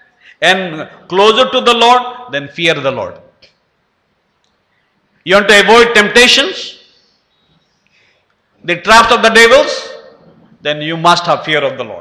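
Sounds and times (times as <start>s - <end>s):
man speaking: 0.4s - 3.3s, 5.2s - 6.8s, 8.6s - 12.0s.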